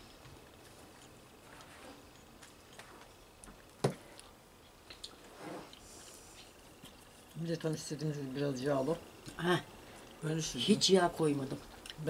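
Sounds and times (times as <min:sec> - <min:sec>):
faint chewing: 0:00.2 - 0:07.7, 0:11.6 - 0:12.0.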